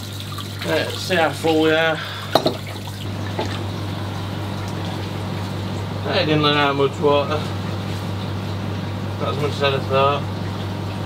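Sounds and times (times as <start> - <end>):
water running and trickling: 0.0 - 11.0
steady low hum: 0.3 - 11.0.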